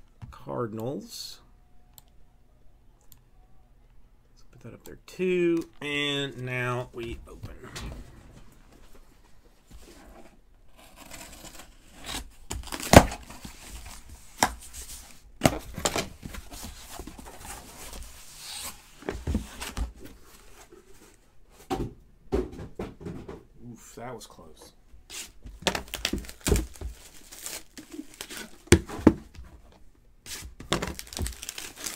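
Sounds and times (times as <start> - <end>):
packaging tearing and crinkling: 11.0 - 14.0, 25.7 - 28.6, 30.6 - 31.9.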